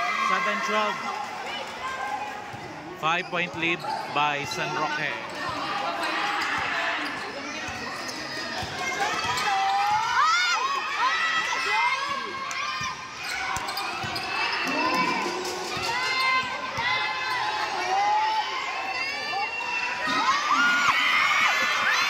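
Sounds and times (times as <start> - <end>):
crowd voices in large hall: 0.0 - 22.0
sneakers squeaking on floor: 3.2 - 10.0, 12.8 - 15.2.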